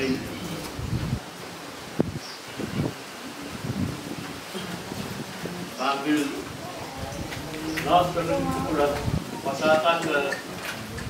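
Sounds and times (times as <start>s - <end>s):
leaves rustling: 0.0s - 11.0s
wind: 0.0s - 11.0s
faint low sounds: 3.5s - 9.4s.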